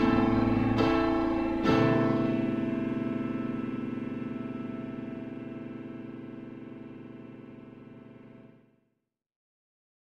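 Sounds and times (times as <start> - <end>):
piano chord ringing: 0.0 - 8.6.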